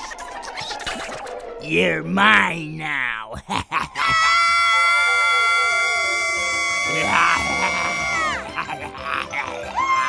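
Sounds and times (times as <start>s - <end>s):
background music: 0.2s - 10.0s
girl screaming high-pitched: 4.0s - 8.5s, 9.7s - 10.0s.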